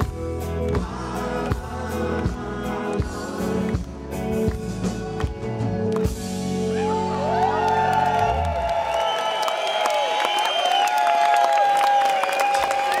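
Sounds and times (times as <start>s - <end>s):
crowd cheering and applauding: 0.0s - 13.0s.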